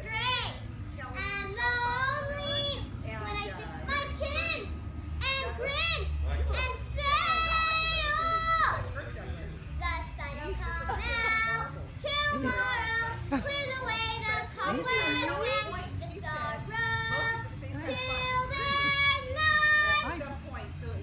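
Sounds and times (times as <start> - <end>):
child singing high: 10.0 - 20.0.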